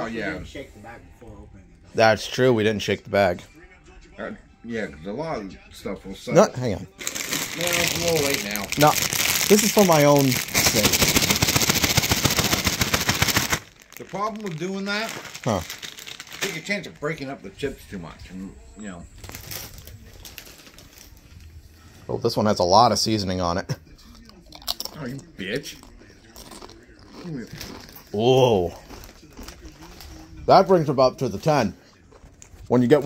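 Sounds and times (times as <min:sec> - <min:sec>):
crisp crackles: 0:06.9 - 0:18.2, 0:18.9 - 0:21.9, 0:25.8 - 0:32.7
chips rattling in crinkly bag: 0:07.0 - 0:17.3, 0:19.2 - 0:21.2.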